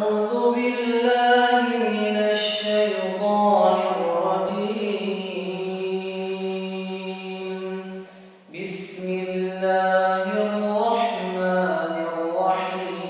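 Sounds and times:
person chanting: 0.0 - 13.0.

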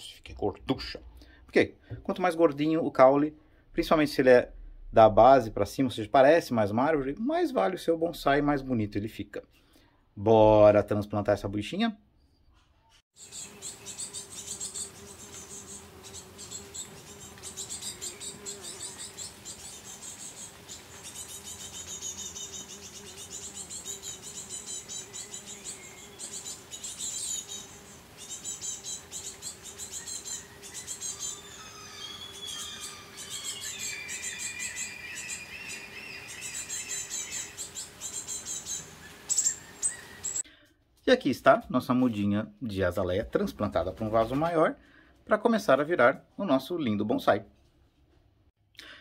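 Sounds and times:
birds chirping and singing: 12.2 - 40.4.

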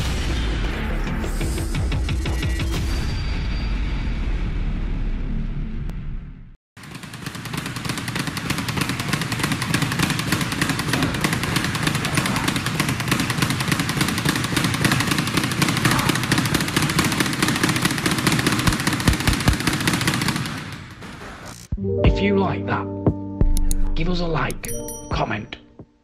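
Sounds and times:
speed bag rattling rapidly: 6.8 - 20.9.

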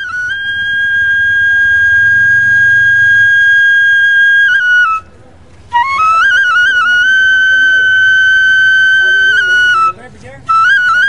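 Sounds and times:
flute holding high note: 0.0 - 5.1, 5.7 - 11.0.

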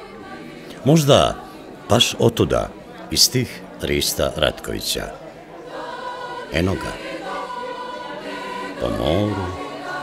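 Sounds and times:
choral voices holding chords: 0.0 - 10.0.

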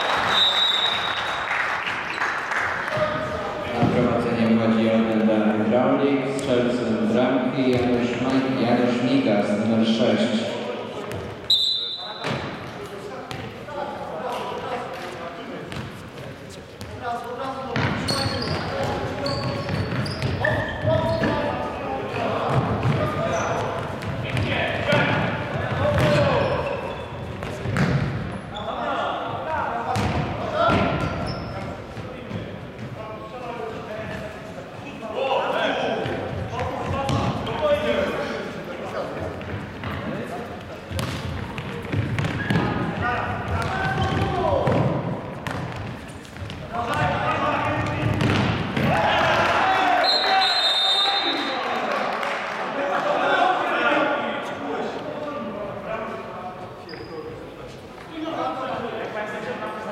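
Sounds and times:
ball bouncing on wooden floor: 43.5 - 48.9.

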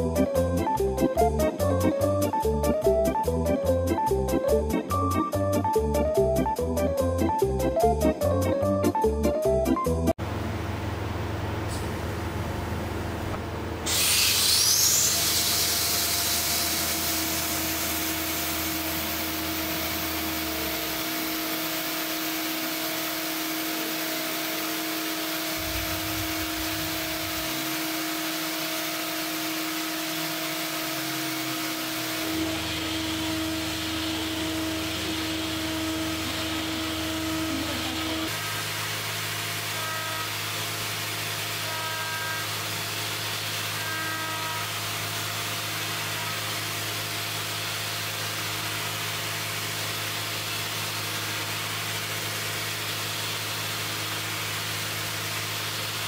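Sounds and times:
milling spindle whine: 13.9 - 48.9.

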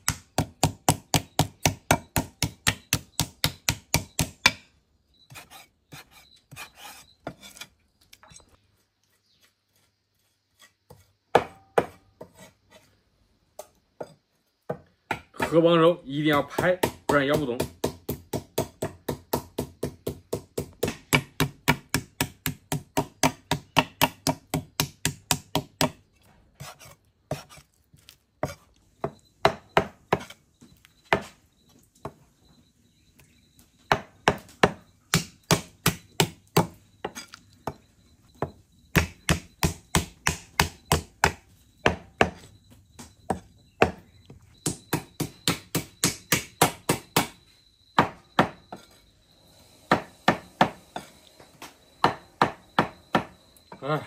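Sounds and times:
cleaver striking wooden block: 0.0 - 4.7.

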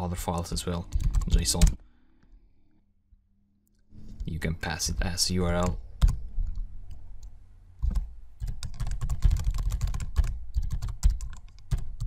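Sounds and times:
computer keyboard typing: 0.9 - 1.8, 5.6 - 6.6, 7.8 - 12.0.

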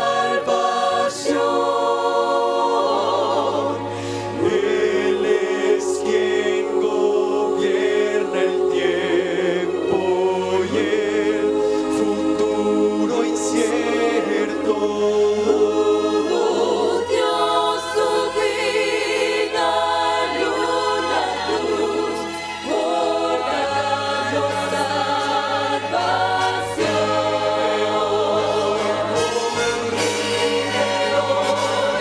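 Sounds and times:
mixed choir singing: 0.0 - 32.0.

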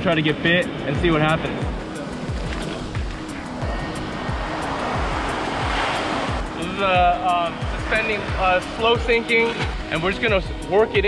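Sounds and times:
ocean surf on sand beach: 0.7 - 9.8
music with steady drum beat: 6.4 - 11.0.

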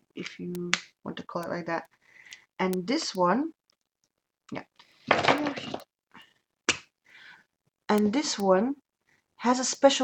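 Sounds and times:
faint breath: 7.0 - 7.5.

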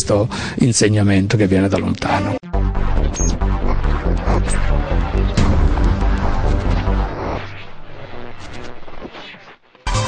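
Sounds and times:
electronic background music: 1.7 - 10.0
steady drone: 2.5 - 9.0.

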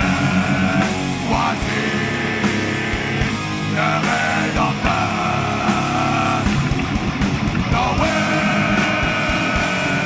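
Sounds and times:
distorted electric guitars: 0.0 - 10.0
pounding drums: 0.0 - 10.0
vocalists singing together: 0.0 - 10.0.

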